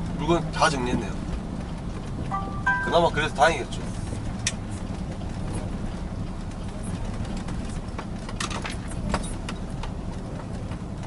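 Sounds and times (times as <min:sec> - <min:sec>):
truck engine and road rumble: 0:00.0 - 0:11.0.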